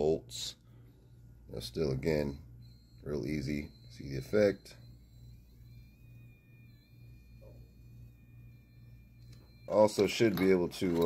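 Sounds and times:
high-pitched whine: 0.0s - 11.0s
pulsing electrical hum: 0.0s - 11.0s.

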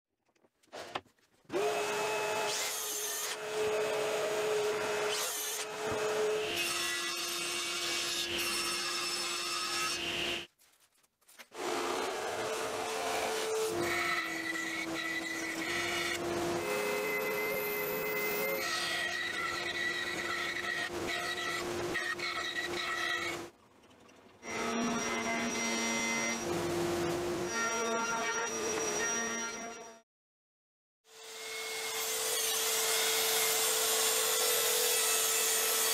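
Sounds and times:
band saw cutting plywood: 11.6s - 23.5s.

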